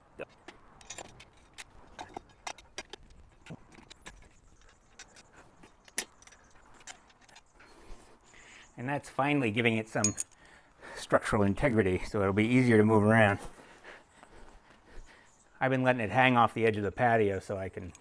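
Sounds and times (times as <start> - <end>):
metal bolts and wrench clinking: 0.4 - 7.6, 10.0 - 10.5.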